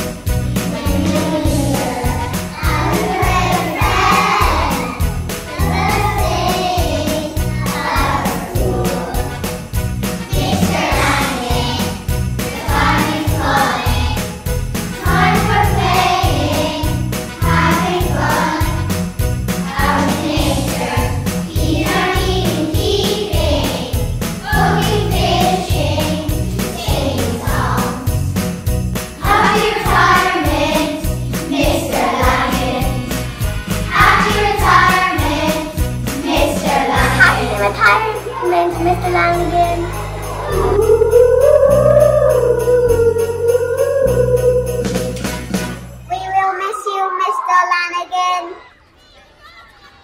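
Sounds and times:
steady percussion beat: 0.0s - 46.1s
backing music: 0.0s - 46.7s
children's choir singing: 0.6s - 9.4s, 10.3s - 14.4s, 15.0s - 18.9s, 19.6s - 28.1s, 29.2s - 45.4s
child singing: 29.2s - 33.0s, 33.9s - 44.7s.

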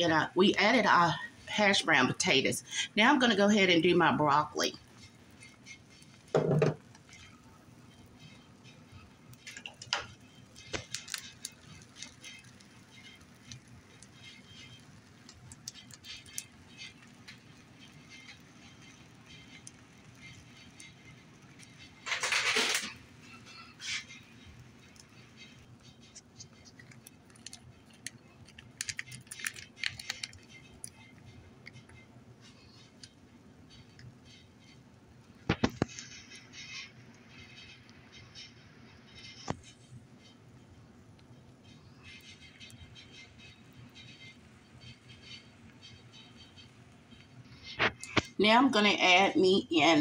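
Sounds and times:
utensil clicking against dishes: 25.8s - 32.0s.

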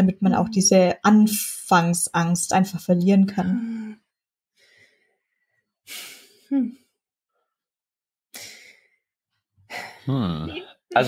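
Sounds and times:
person sighing: 5.9s - 6.8s, 10.1s - 10.6s.

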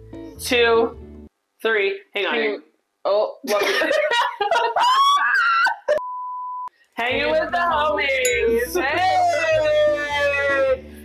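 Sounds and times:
laughter and voices: 3.4s - 6.0s
censor bleep tone: 6.0s - 6.7s.

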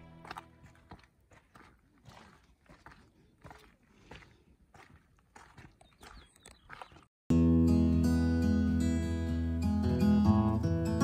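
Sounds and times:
footsteps on gravel: 0.0s - 7.1s.

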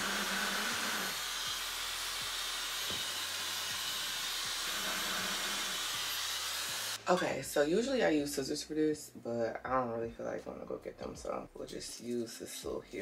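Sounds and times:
hair dryer blowing: 0.0s - 7.0s.

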